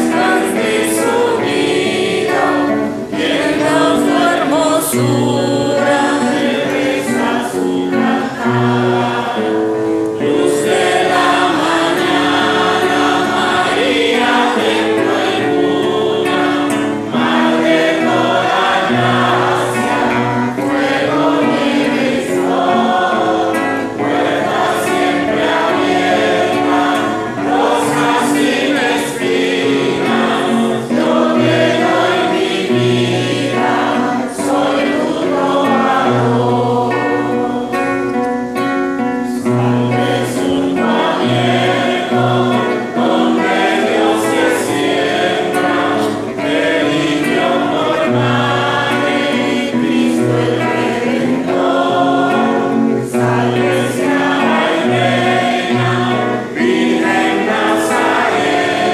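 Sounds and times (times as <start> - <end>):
congregation singing a hymn: 0.0 - 58.9.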